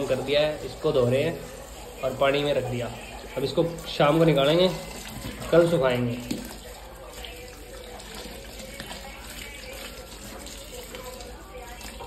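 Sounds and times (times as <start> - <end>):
hose water splashing into bucket: 0.0 - 12.0.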